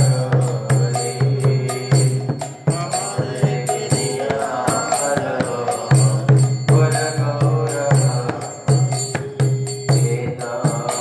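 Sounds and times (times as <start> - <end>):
person chanting melodically: 0.0 - 11.0
steady drum beat: 0.0 - 11.0.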